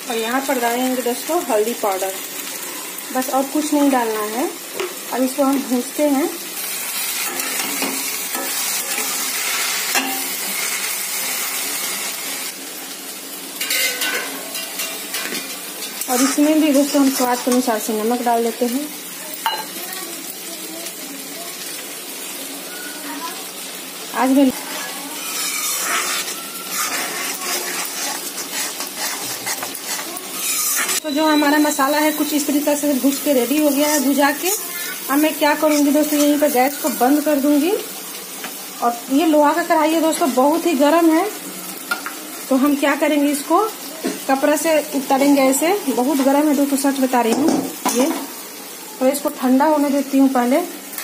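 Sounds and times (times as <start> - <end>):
okra sizzling in hot oil: 0.0 - 51.0
metal spatula scraping a pan: 7.0 - 11.0, 13.6 - 17.8, 24.7 - 37.5
spatula scraping iron pan: 16.0 - 17.7, 24.8 - 31.1, 35.6 - 37.0.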